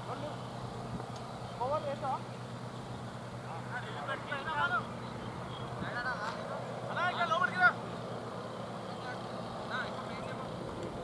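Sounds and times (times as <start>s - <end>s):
distant shouted calls: 0.0s - 10.6s.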